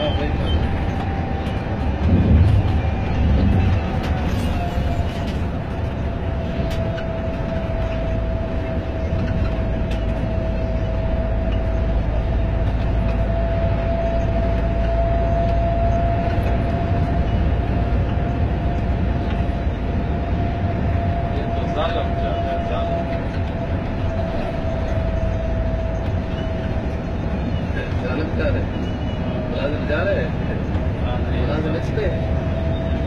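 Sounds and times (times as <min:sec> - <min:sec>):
coach engine and road noise: 0:00.0 - 0:33.0.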